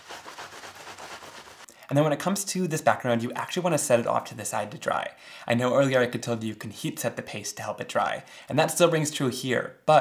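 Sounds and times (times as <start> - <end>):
paper towel wiping plastic: 0.0 - 1.7.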